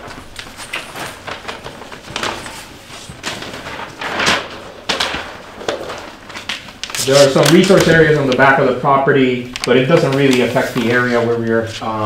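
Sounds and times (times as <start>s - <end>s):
paper sheets crinkling: 0.0s - 12.0s.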